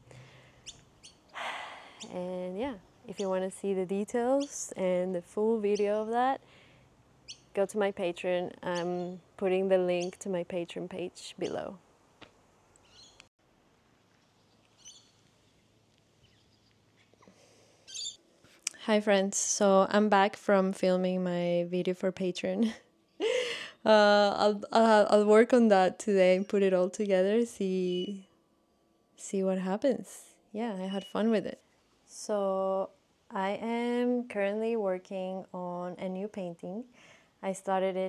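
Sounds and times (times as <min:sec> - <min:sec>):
small bird chirping: 0:00.6 - 0:03.4, 0:04.3 - 0:04.8, 0:07.2 - 0:07.6, 0:08.7 - 0:09.3, 0:09.9 - 0:10.3, 0:12.8 - 0:13.3, 0:14.1 - 0:17.2, 0:17.8 - 0:18.2.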